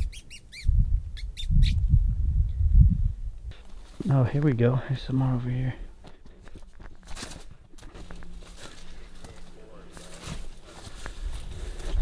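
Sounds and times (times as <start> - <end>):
squirrel chirping: 0.0 - 1.8.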